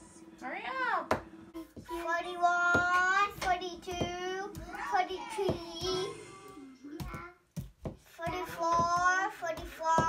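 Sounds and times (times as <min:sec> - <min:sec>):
child counting in sing-song voice: 0:01.6 - 0:10.0.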